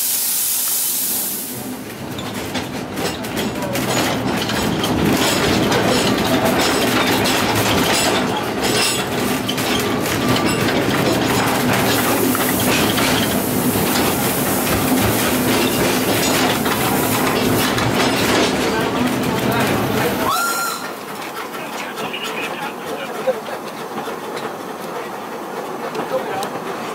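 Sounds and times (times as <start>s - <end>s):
railway carriage rumble: 1.3s - 26.9s
wheels clicking over rail joints: 1.8s - 26.9s.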